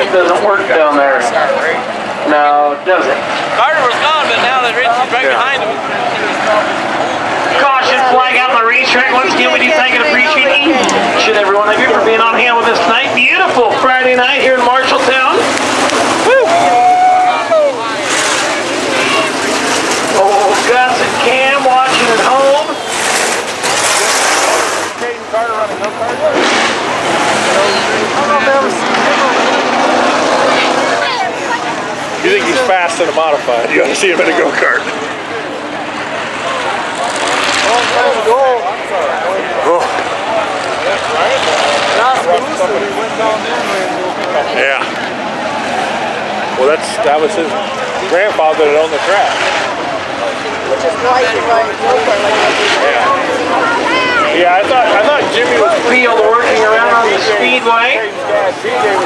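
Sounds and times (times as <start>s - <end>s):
people talking: 0.0s - 59.0s
race car engines droning: 0.0s - 59.0s.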